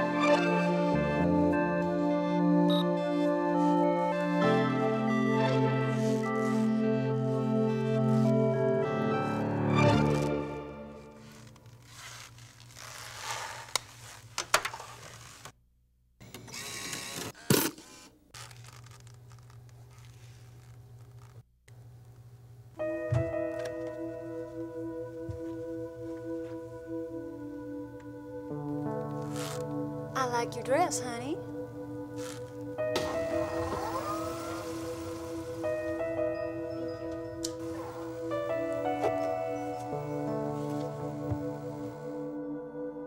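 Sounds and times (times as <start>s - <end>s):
synthesizer sustained chords: 22.8s - 43.0s
rising synth glide: 33.0s - 38.4s.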